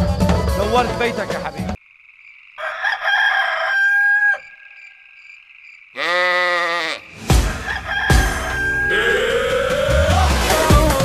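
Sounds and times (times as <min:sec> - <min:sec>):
music: 0:00.0 - 0:01.8, 0:07.2 - 0:11.0
rooster crowing: 0:02.6 - 0:04.8, 0:07.5 - 0:09.4.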